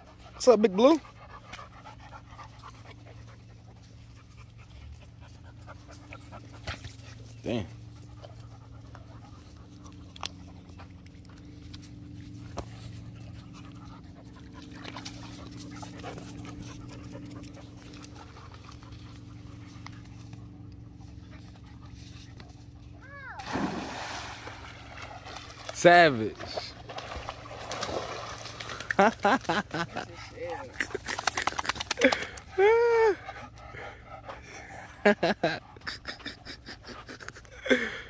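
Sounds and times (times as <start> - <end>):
dog panting: 0.0 - 23.0, 29.6 - 38.0
low steady hum: 0.0 - 38.0
water splash: 23.4 - 25.7.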